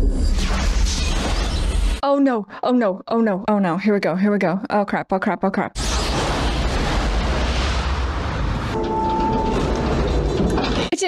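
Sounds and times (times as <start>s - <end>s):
explosion rumble with hiss: 5.8s - 10.3s
brief steady tone: 8.8s - 9.7s.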